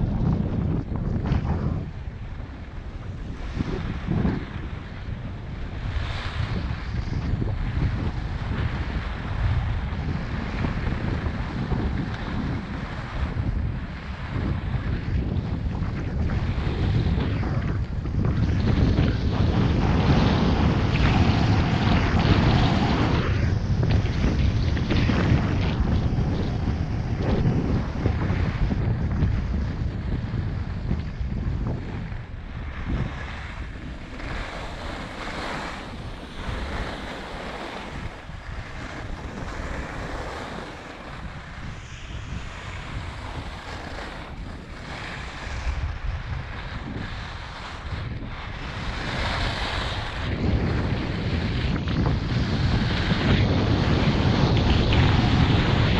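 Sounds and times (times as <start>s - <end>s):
wind rushing over microphone: 0.0s - 55.9s.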